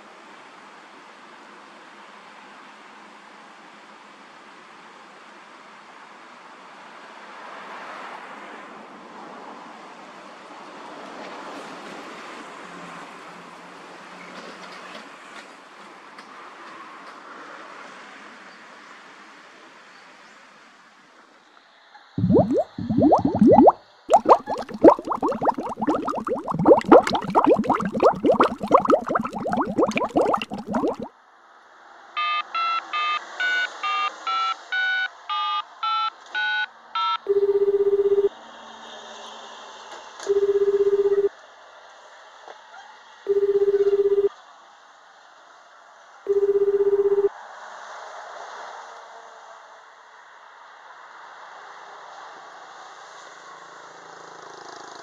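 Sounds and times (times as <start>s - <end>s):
telephone ringback beeps: 37.3s - 38.3s, 40.3s - 41.3s, 43.3s - 44.3s, 46.3s - 47.3s
keypad tones: 43.5s - 44.2s.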